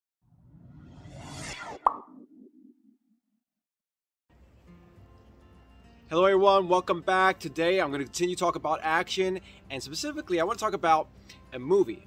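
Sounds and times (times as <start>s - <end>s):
whoosh: 0.3s - 2.9s
sharp pop: 1.7s - 2.3s.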